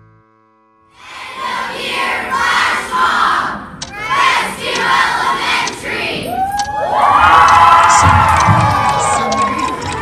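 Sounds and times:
children shouting and cheering: 1.0 - 10.0.

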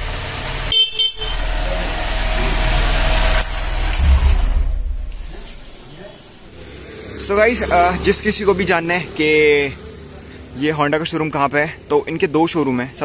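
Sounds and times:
motorcycle engine running: 0.0 - 5.7
motorcycle horn blast: 0.7 - 1.7.

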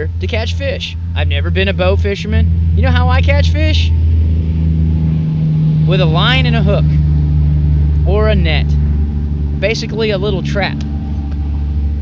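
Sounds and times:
man speaking: 0.0 - 4.0, 5.9 - 7.0, 8.0 - 8.8, 9.6 - 10.8
low mechanical hum: 0.0 - 12.0.

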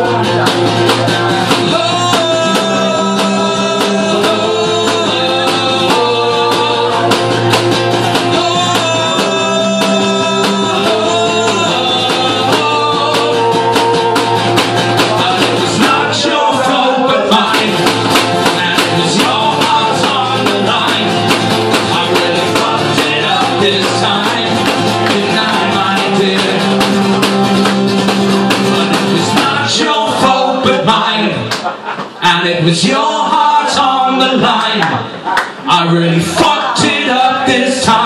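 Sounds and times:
acoustic guitar strumming: 0.0 - 31.5
man singing into microphone: 1.1 - 27.7, 28.3 - 31.6, 32.2 - 38.0.

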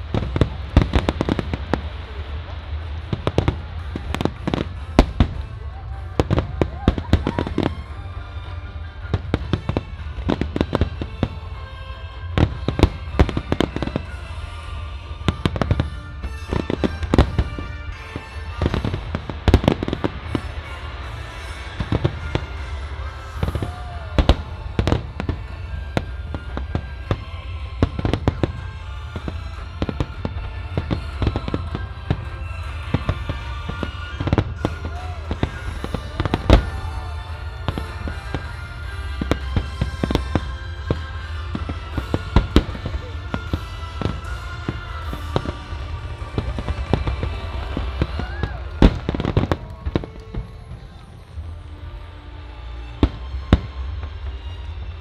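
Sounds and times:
fireworks bursting with sharp bangs: 0.0 - 55.0
music playing: 0.0 - 55.0.

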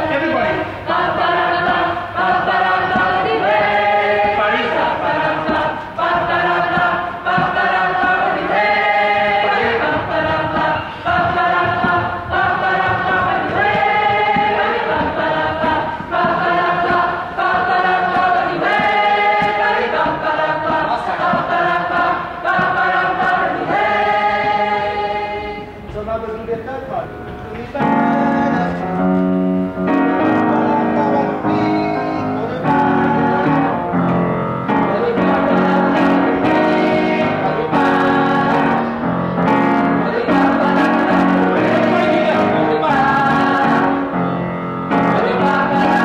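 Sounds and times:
group singing in harmony: 0.0 - 26.0, 27.2 - 46.0
piano chords: 0.0 - 46.0.

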